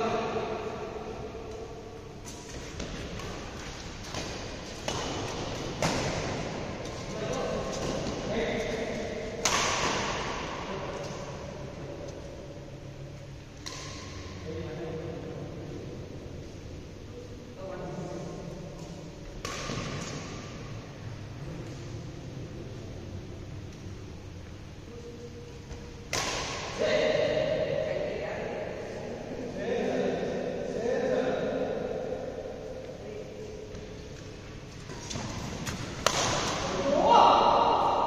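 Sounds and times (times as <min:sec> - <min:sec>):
steady hum: 0:00.0 - 0:38.0
rackets hitting shuttlecock: 0:01.4 - 0:11.6, 0:13.5 - 0:14.5, 0:18.8 - 0:20.8, 0:25.7 - 0:27.7, 0:34.9 - 0:38.0
players' voices: 0:06.5 - 0:12.5, 0:36.2 - 0:38.0
player shouting: 0:36.8 - 0:38.0.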